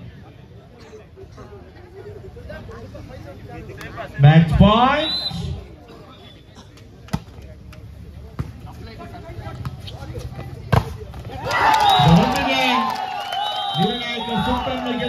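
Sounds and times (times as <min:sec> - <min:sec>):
crowd shouting and cheering: 0:11.3 - 0:15.0.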